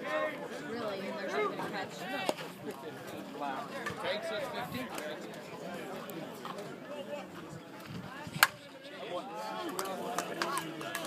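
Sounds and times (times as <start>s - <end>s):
voices of players and onlookers: 0.0s - 11.0s.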